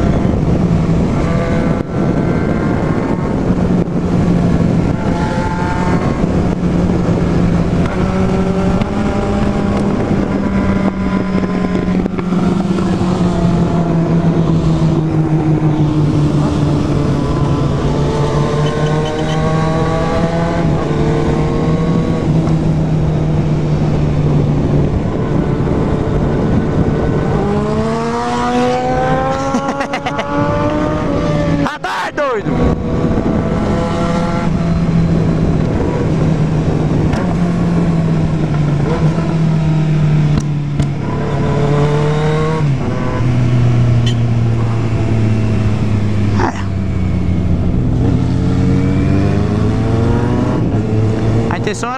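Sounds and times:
motorcycle engine: 0.0 - 31.7, 32.4 - 51.9
wind rushing over microphone: 0.0 - 51.9.

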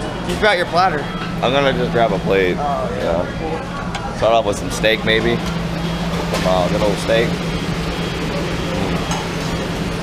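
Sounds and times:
constant low hum: 0.0 - 10.0.

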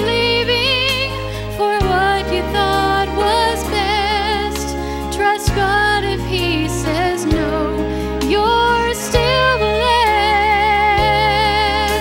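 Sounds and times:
instrumental accompaniment with bass: 0.0 - 12.0
woman singing into a microphone: 0.0 - 12.0.

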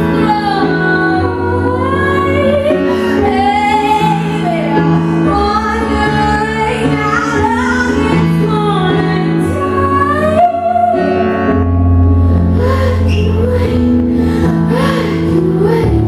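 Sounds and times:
woman singing: 0.0 - 11.6, 12.6 - 16.0
electric keyboard chords: 0.0 - 16.0.

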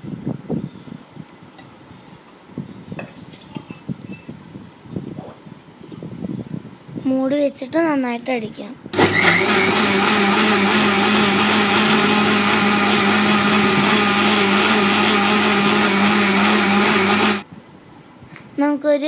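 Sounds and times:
mixer grinder humming: 9.0 - 17.4.

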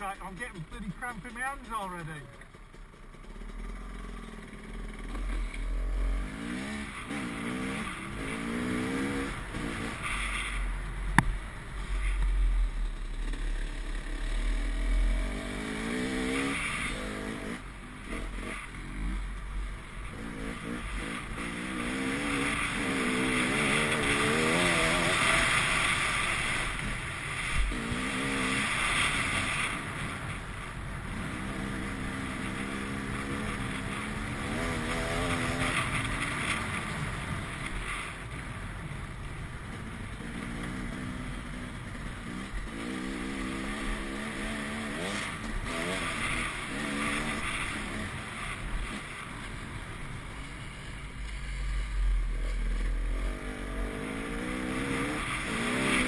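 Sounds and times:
dirt bike engine revving: 0.0 - 30.3, 31.0 - 37.6, 40.2 - 49.6, 51.4 - 56.0.

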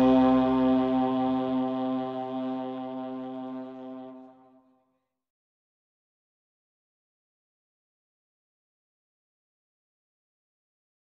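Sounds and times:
brass band holding a chord: 0.0 - 4.6.

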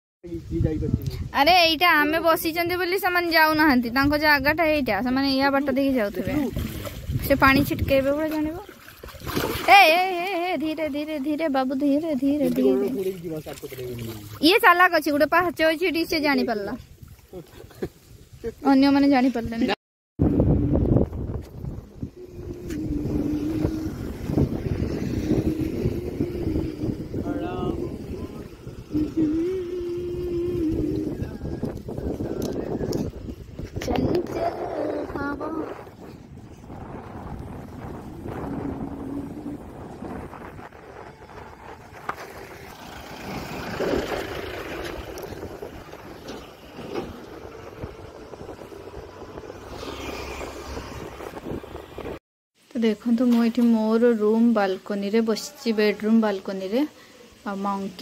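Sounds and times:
wind rumbling on microphone: 0.2 - 52.2
passing road traffic: 20.4 - 52.2
steady wavering hum: 21.8 - 31.6.

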